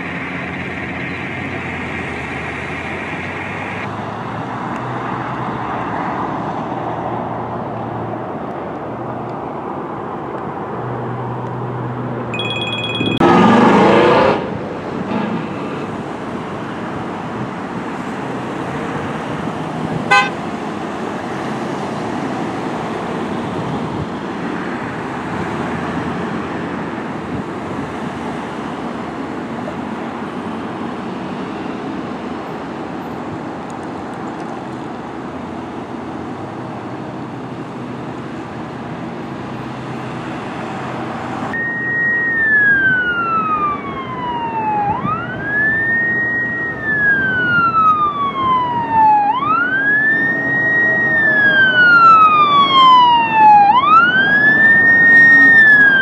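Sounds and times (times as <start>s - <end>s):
road traffic passing: 0.0s - 56.0s
vehicle horn blast: 20.1s - 20.4s.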